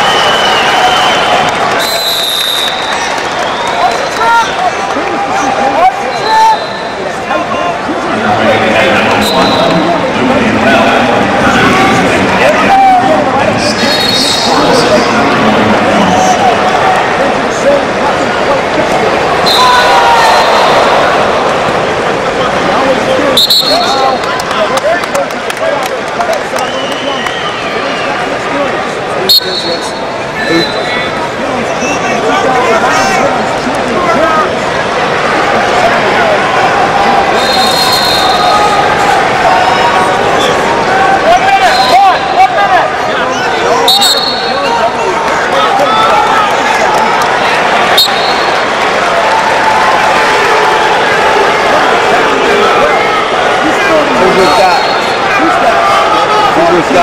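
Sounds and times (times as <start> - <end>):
referee's whistle blast: 0.0 - 3.8, 6.1 - 7.0, 9.1 - 9.9, 19.4 - 20.7, 23.4 - 24.2, 29.3 - 31.0, 37.4 - 38.6, 41.6 - 42.4, 43.8 - 44.7, 47.9 - 48.6
arena crowd cheering: 0.0 - 57.0.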